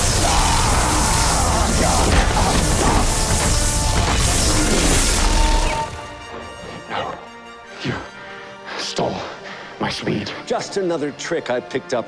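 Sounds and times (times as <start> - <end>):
crackling lightning sound effect: 0.0 - 6.1
dramatic orchestral score: 0.0 - 12.0.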